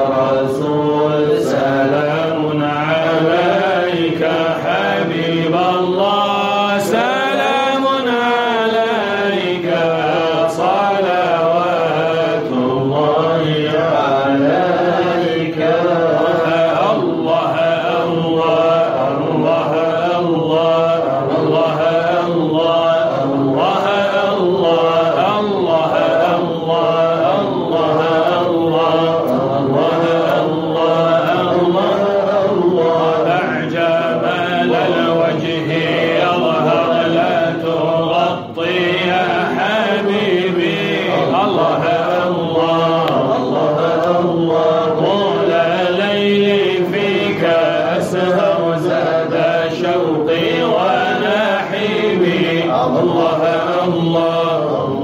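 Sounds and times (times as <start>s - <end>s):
group of voices chanting: 0.0s - 55.0s.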